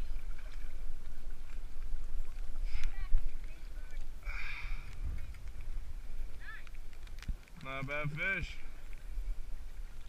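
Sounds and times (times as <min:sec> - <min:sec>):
water lapping and splashing: 0:00.0 - 0:10.0
wind rumbling on microphone: 0:00.0 - 0:10.0.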